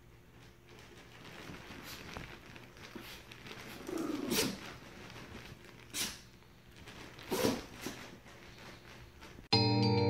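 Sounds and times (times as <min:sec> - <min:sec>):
dog snorting or snapping: 0:02.9 - 0:04.8, 0:07.2 - 0:08.1
small dog growling: 0:03.7 - 0:04.6.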